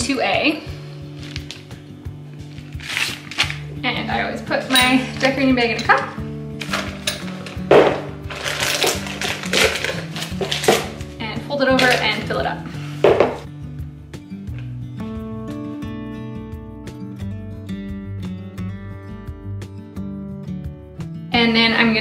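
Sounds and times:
acoustic music: 0.0s - 22.0s
plastic piping bag crinkling: 1.1s - 1.8s, 2.4s - 3.8s, 6.6s - 11.0s.

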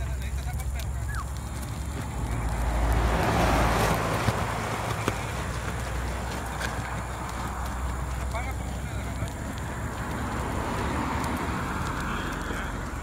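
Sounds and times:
faint voices: 0.0s - 13.0s
fire crackling: 0.0s - 13.0s
vehicle passing: 0.0s - 13.0s.

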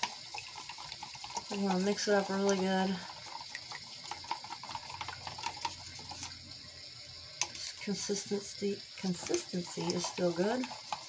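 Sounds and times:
stick scraping a plastic cup: 0.0s - 6.4s, 9.0s - 11.0s.

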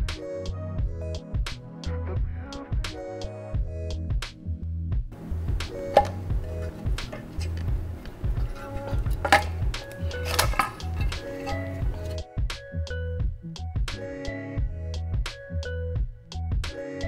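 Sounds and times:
background music with bass line: 0.0s - 17.0s.

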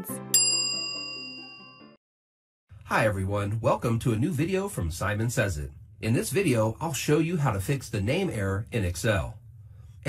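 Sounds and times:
bell-like notification chime: 0.3s - 2.0s.

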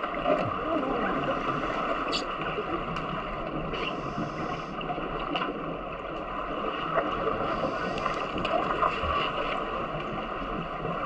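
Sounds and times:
muffled underwater rushing hiss: 0.7s - 5.3s, 6.6s - 11.0s.

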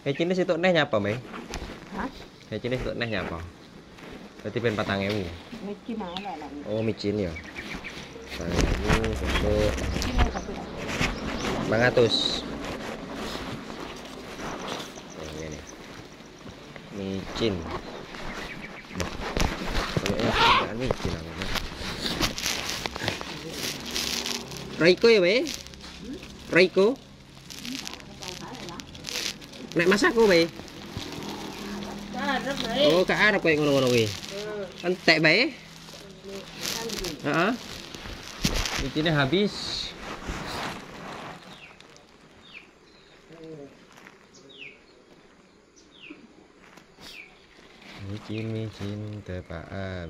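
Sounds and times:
plastic bag rustling: 1.0s - 44.4s
small bird chirping: 13.6s - 19.2s, 41.3s - 48.8s.

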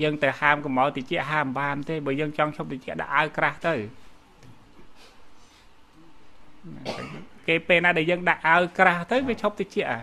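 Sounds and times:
man speaking into a microphone: 0.0s - 4.0s, 7.4s - 10.0s
faint hum: 0.0s - 10.0s.

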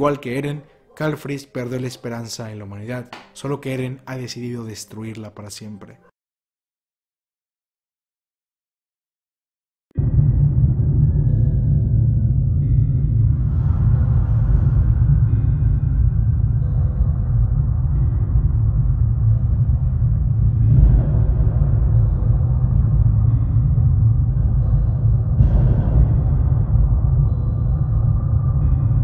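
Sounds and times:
dark ominous music with low rumble: 9.9s - 29.0s.

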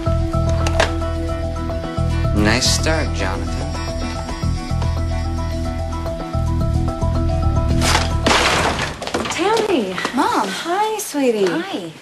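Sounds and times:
glass smashing: 7.7s - 9.8s.

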